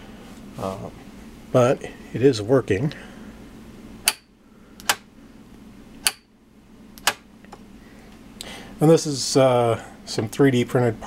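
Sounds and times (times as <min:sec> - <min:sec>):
solenoid clacking: 0:07.0 - 0:07.2.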